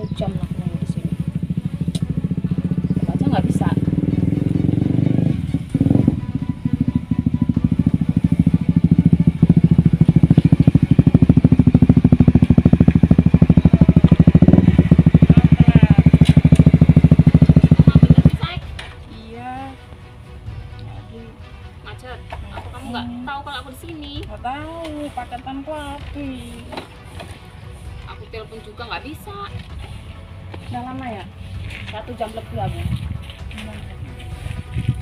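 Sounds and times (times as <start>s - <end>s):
motorcycle engine running: 0.0s - 19.0s, 24.4s - 35.0s.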